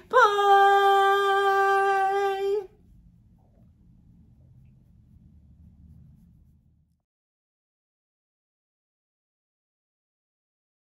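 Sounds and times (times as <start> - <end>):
faint low rumble: 0.0 - 7.1.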